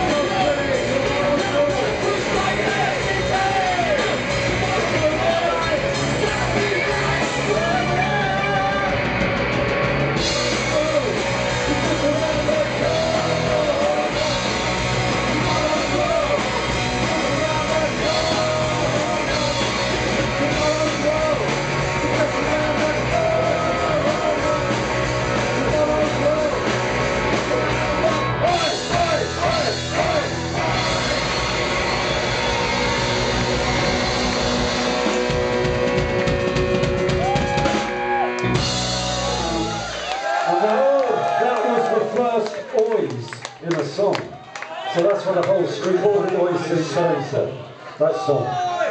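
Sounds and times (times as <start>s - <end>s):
shouted lead vocal: 0.0s - 9.2s, 10.1s - 35.8s, 37.0s - 42.4s
rapid drum hits: 0.0s - 39.3s
punk rock band playing: 0.0s - 42.3s.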